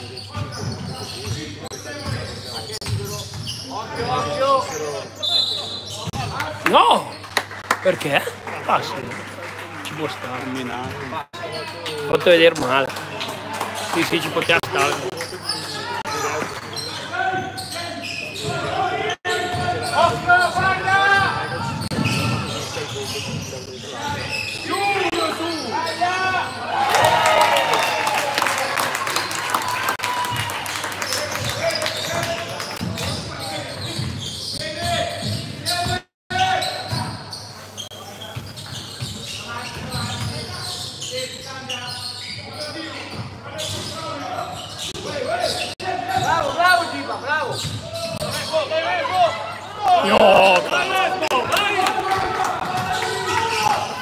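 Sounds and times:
crowd cheering and clapping: 0:06.6 - 0:11.2, 0:26.7 - 0:32.8, 0:49.9 - 0:54.0
players and spectators calling out: 0:43.6 - 0:54.0.

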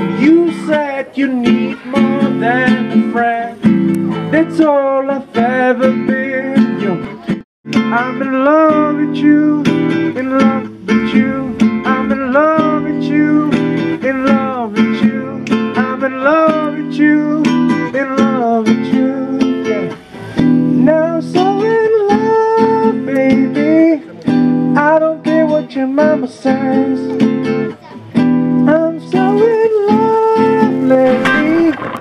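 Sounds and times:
acoustic guitar playing: 0:00.0 - 0:32.0.

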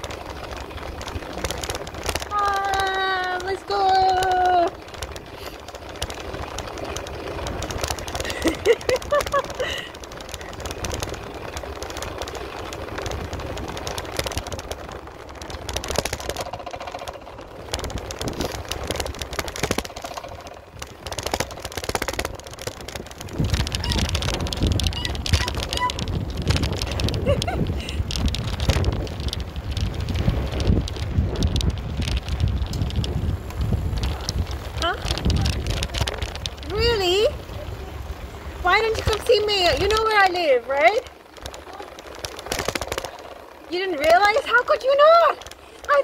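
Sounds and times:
wind buffeting microphone: 0:00.0 - 0:46.0.

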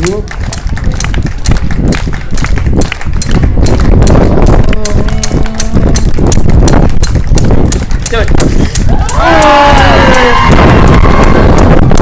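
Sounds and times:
crowd clapping in time: 0:00.0 - 0:12.0
wind rumble on microphone: 0:00.0 - 0:12.0
person speaking: 0:04.7 - 0:06.0.

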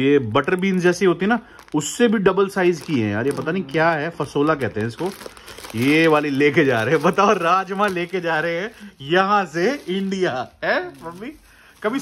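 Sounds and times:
person talking: 0:00.0 - 0:12.0
plastic packet crinkling: 0:00.0 - 0:12.0.

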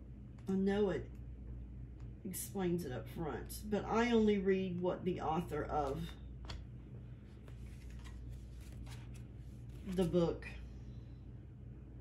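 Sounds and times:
paper cards rustling: 0:05.8 - 0:06.6, 0:07.2 - 0:10.2.

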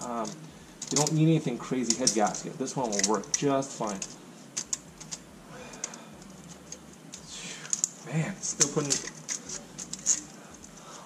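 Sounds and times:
fingers clicking on metal gasket: 0:01.9 - 0:08.0, 0:08.6 - 0:10.8.

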